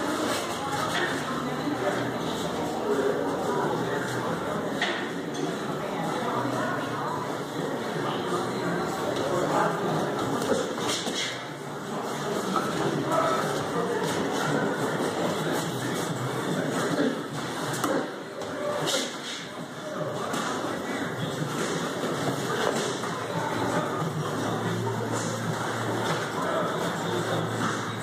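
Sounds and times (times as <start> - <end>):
indistinct background voices: 0.0 - 28.0.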